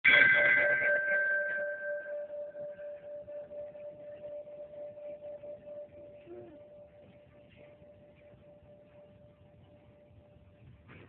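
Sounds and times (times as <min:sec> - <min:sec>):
large brass bell ringing: 0:00.0 - 0:07.0.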